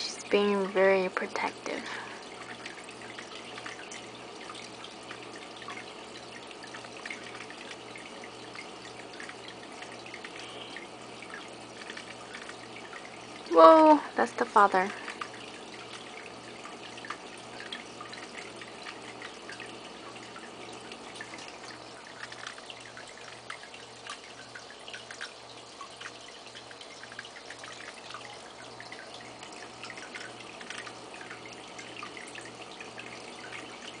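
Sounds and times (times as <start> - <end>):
faint pulsing hum: 0.0 - 34.0
water trickling and dripping: 0.0 - 34.0.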